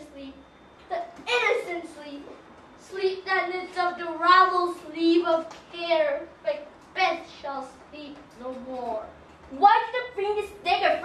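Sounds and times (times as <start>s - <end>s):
child speaking: 0.0s - 11.0s.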